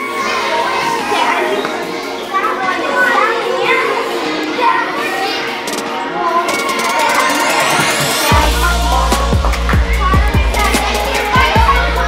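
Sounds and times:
children chattering in a hall: 0:00.0 - 0:12.0
music playing: 0:00.0 - 0:12.0.

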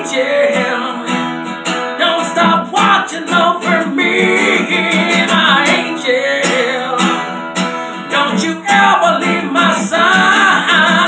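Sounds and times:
acoustic guitar strumming: 0:00.0 - 0:11.0
man singing wordless vocal: 0:00.0 - 0:11.0.

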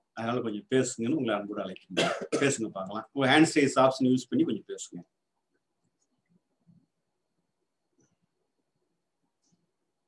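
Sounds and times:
man talking: 0:00.2 - 0:05.1.

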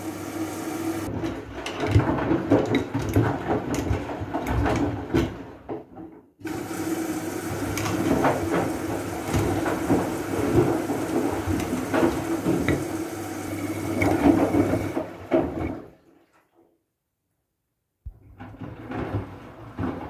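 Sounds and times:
washing machine drum turning: 0:00.0 - 0:05.4, 0:06.4 - 0:15.9.

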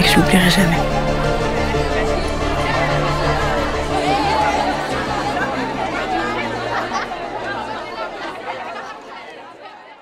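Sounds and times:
low music notes: 0:00.0 - 0:08.8
many voices chattering: 0:00.0 - 0:10.0.

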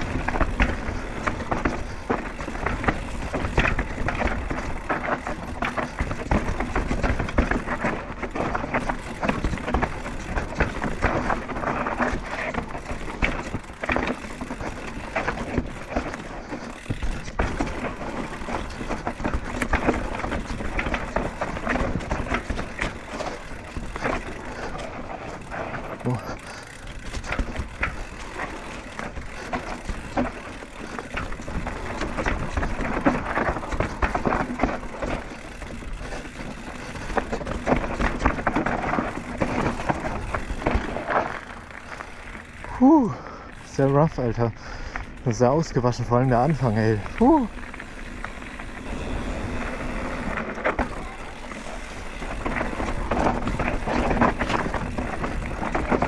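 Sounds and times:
bike rattling over roots and stones: 0:00.0 - 0:56.0
tyres crunching on dirt: 0:00.0 - 0:56.0.

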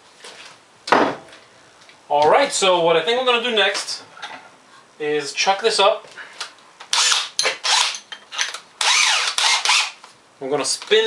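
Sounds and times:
cordless drill motor whine: 0:06.9 - 0:07.9, 0:08.8 - 0:10.0.

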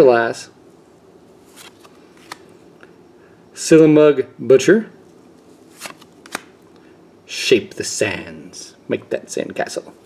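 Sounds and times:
trading cards sliding: 0:01.4 - 0:02.6, 0:05.6 - 0:06.6.

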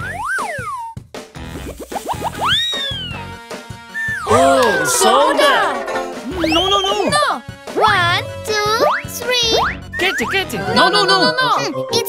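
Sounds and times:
background music: 0:01.1 - 0:12.0
sliding whistle-like tone: 0:02.4 - 0:03.2, 0:06.3 - 0:07.1.

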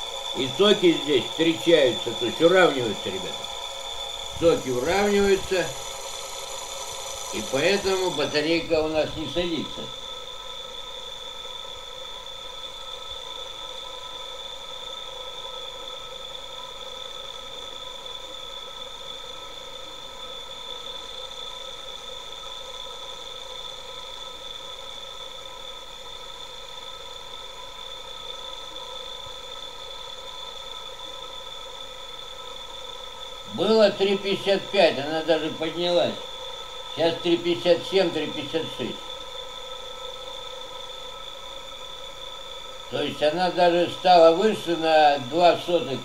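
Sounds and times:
electric motor whine: 0:00.0 - 0:24.5, 0:27.8 - 0:46.0.

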